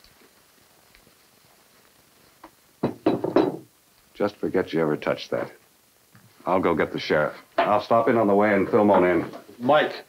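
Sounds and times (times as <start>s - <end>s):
hard object knocking on wood: 2.8s - 3.6s.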